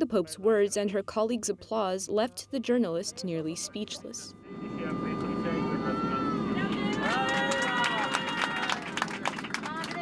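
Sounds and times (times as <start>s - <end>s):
airliner cabin drone: 2.6s - 10.0s
people exclaiming: 6.2s - 9.0s
hand claps: 6.9s - 10.0s.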